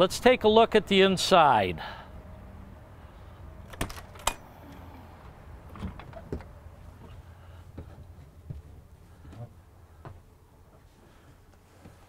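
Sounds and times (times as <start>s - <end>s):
low steady hum: 0.0s - 12.0s
footsteps on metal steps: 5.7s - 10.9s.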